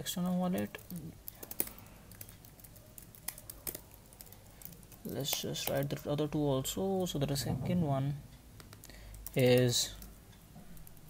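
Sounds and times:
faint room hum: 0:00.0 - 0:11.0
computer keyboard keystrokes: 0:00.5 - 0:06.0, 0:08.6 - 0:10.2.

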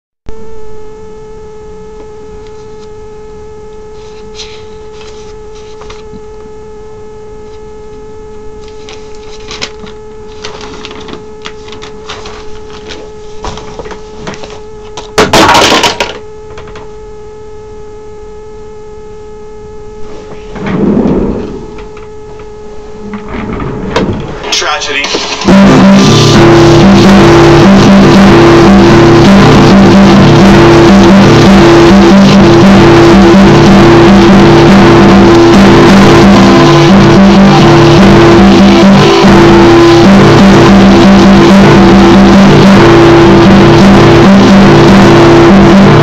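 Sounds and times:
steady electrical hum: 0:00.3 - 0:46.0
paper being handled: 0:04.0 - 0:06.2, 0:08.6 - 0:14.6
rustling against microphone: 0:08.6 - 0:14.6.

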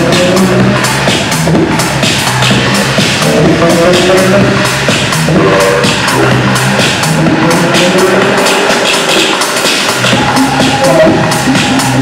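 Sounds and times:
minimal techno over sound system: 0:00.0 - 0:12.0.

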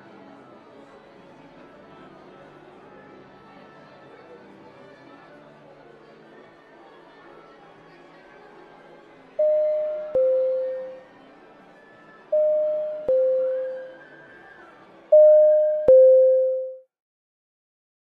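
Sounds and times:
background murmur: 0:00.0 - 0:16.5
two-tone chime: 0:09.4 - 0:11.0, 0:12.4 - 0:14.0, 0:15.1 - 0:16.8.

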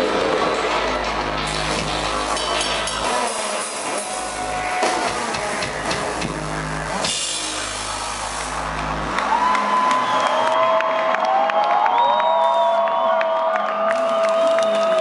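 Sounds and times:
rock band playing live: 0:00.0 - 0:09.4
audience cheering and screaming: 0:03.0 - 0:06.2, 0:06.9 - 0:15.0.

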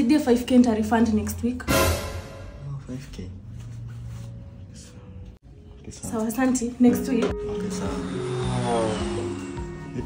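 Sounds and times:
background music with low notes: 0:00.2 - 0:10.0.

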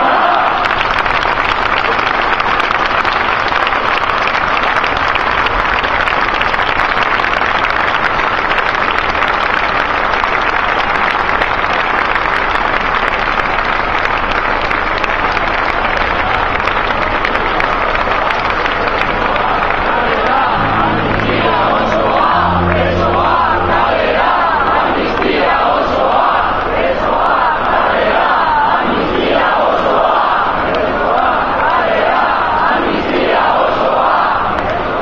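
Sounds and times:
crowd applauding: 0:00.0 - 0:25.4.

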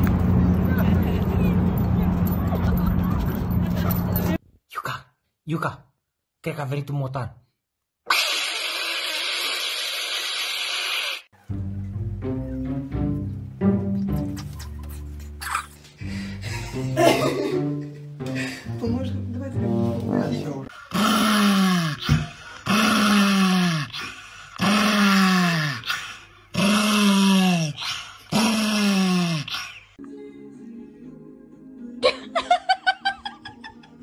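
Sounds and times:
background music: 0:11.4 - 0:20.7, 0:30.0 - 0:34.0.

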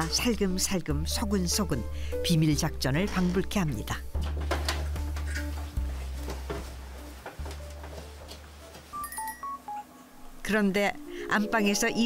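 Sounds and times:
low background music: 0:00.0 - 0:12.0.

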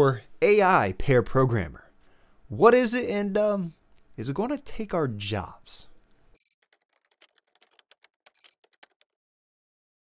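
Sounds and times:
rapid digital ticks: 0:06.4 - 0:09.0.

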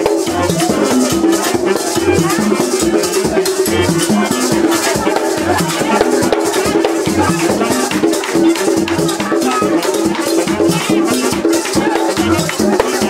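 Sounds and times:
drums beating rhythm: 0:00.0 - 0:13.0
rattle shaken: 0:00.0 - 0:13.0.

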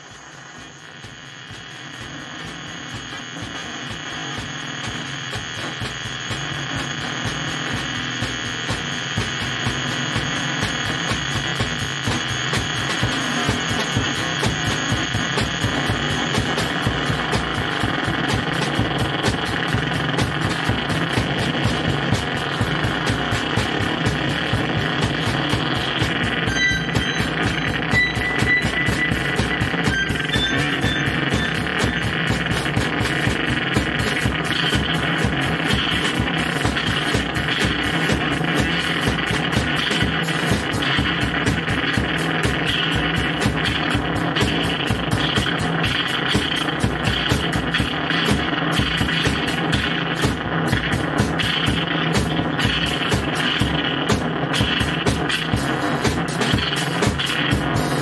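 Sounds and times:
high steady tones: 0:00.0 - 0:58.0
noisy pulsing drone: 0:00.0 - 0:58.0.

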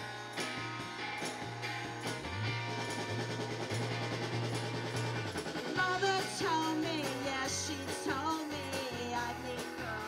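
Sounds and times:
drum kit: 0:00.0 - 0:10.0
woman singing: 0:05.7 - 0:10.0.

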